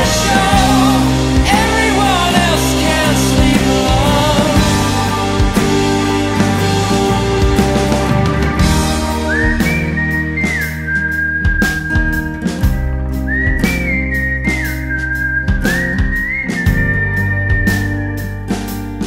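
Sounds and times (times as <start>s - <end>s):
whistled melody: 0.0s - 18.8s
indie rock band: 0.0s - 19.0s.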